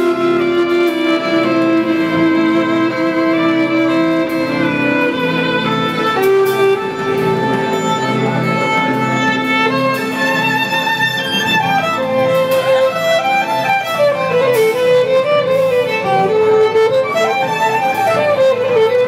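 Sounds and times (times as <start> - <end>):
sustained lower instruments: 0.0 - 19.0
violin bowed notes: 0.0 - 19.0.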